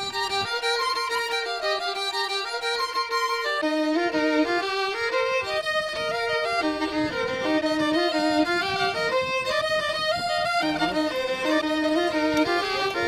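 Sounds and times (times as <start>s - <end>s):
fiddle playing dance tune: 0.0s - 13.0s.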